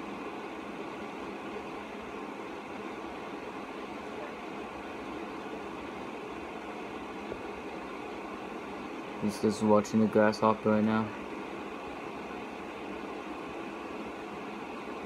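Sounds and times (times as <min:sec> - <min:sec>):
room hiss: 0:00.0 - 0:15.0.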